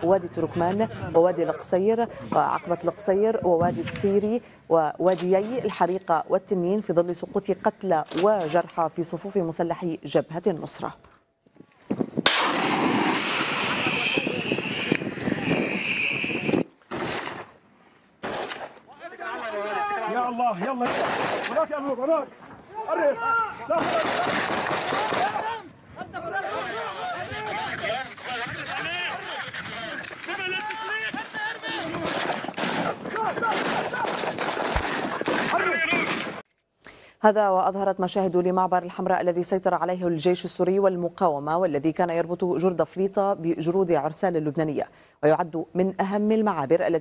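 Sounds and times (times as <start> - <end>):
rocket launcher firing: 12.2 - 16.0, 16.9 - 17.5, 18.2 - 18.8
crackling rushing roar: 12.3 - 16.7
automatic rifle fire: 16.9 - 17.5, 18.2 - 18.7, 20.8 - 21.6, 23.8 - 25.4, 32.0 - 36.4
men shouting: 18.9 - 20.8, 22.7 - 32.1, 33.0 - 34.3.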